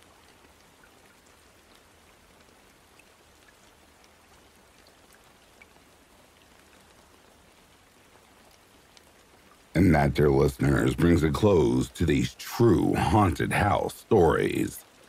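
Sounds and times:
rain patter: 0.0 - 15.0.

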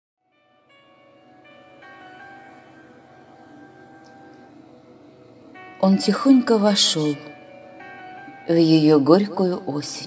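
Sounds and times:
soft instrumental music: 0.2 - 10.0.

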